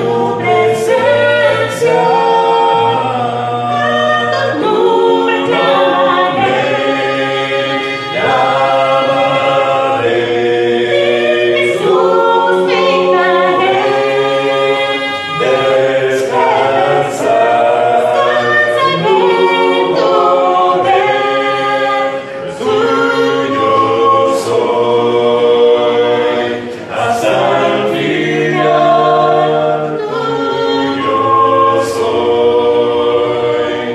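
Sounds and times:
group singing a hymn a cappella: 0:00.0 - 0:33.9.

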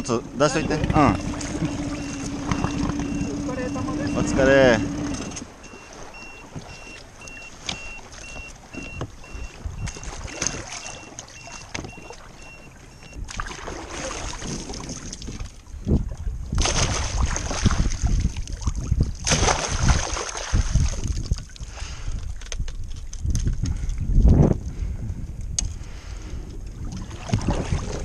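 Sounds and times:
water splashing and sloshing: 0:00.0 - 0:24.9, 0:25.6 - 0:28.0
high electronic beeps: 0:00.5 - 0:13.2.

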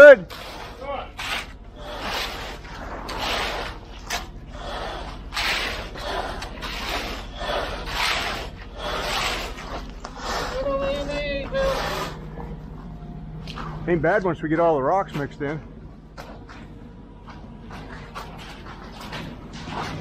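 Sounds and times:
screed board scraping wet concrete: 0:00.0 - 0:12.4.

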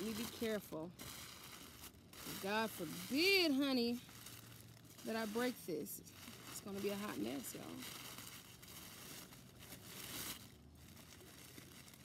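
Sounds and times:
tissue paper rustling and crinkling: 0:00.0 - 0:12.0.

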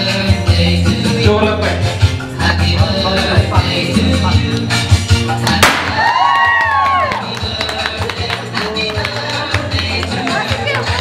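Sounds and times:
music with heavy bass beat: 0:00.0 - 0:11.0
confetti popper pop: 0:05.4 - 0:06.9.

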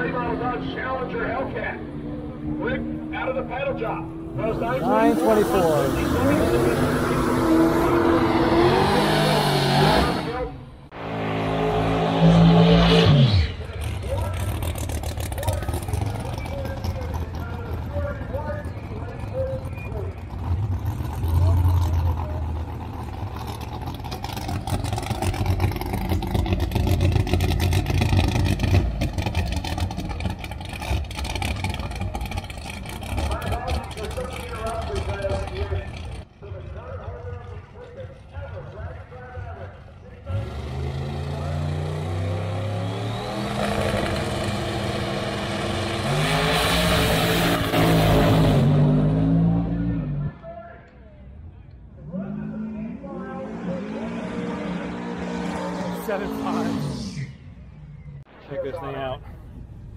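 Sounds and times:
race car engines running hard: 0:00.0 - 0:59.9
low engine rumble: 0:13.5 - 0:40.3.

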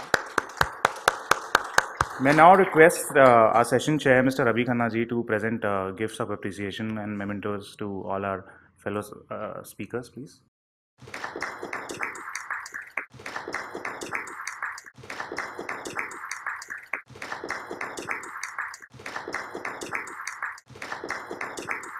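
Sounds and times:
audience clapping: 0:00.0 - 0:03.5, 0:11.0 - 0:21.9.

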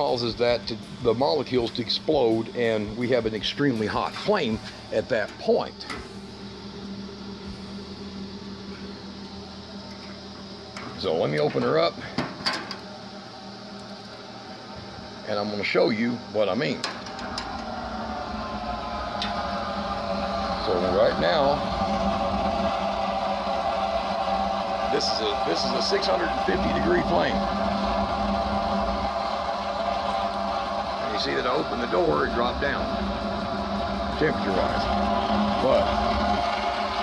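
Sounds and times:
heater humming: 0:00.0 - 0:37.0.

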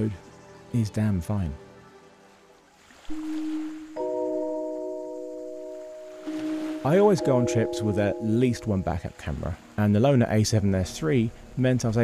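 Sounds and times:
held musical note: 0:03.1 - 0:09.2
sustained chord: 0:03.1 - 0:09.4.

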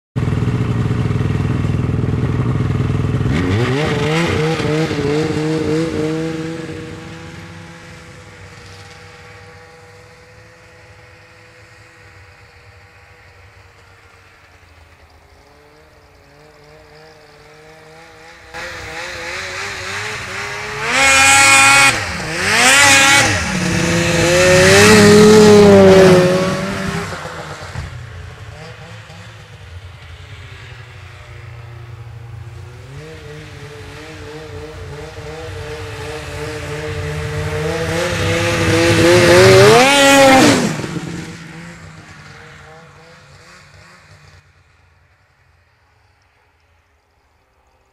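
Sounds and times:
snowmobile engine revving: 0:00.2 - 0:44.5.

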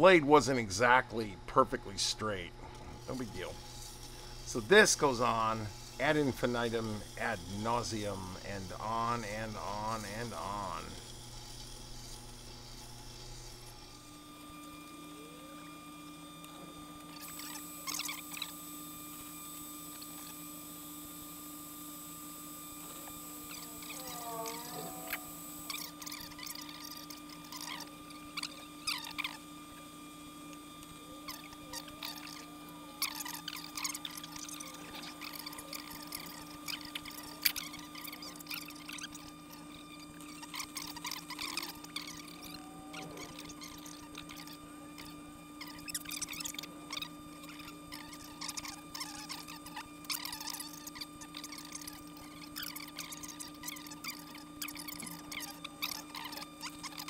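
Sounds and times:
grinding wheel motor hum: 0:00.0 - 0:57.0.

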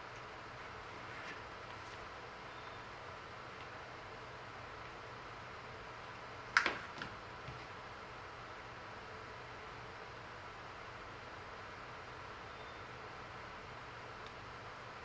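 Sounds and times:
low hiss and hum: 0:00.0 - 0:15.0.

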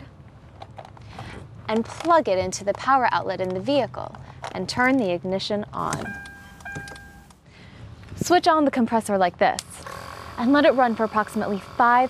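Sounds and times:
dashboard electronic chimes: 0:05.8 - 0:07.3.

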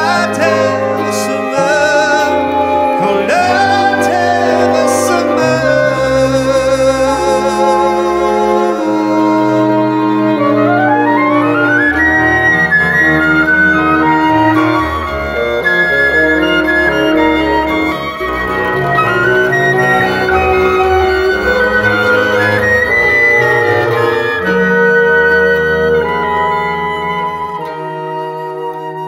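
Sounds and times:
slow folk instrumental: 0:00.0 - 0:29.0
flute rising run: 0:07.5 - 0:29.0.

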